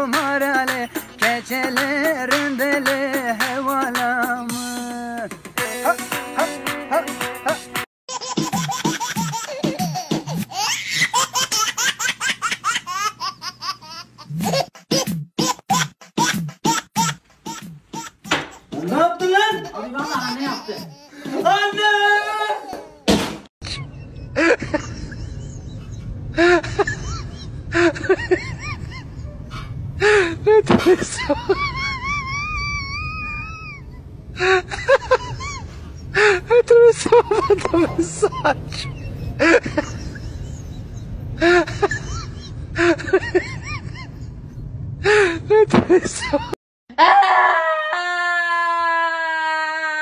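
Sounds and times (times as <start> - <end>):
high-pitched laughter: 30.5 - 33.8, 36.5 - 40.8.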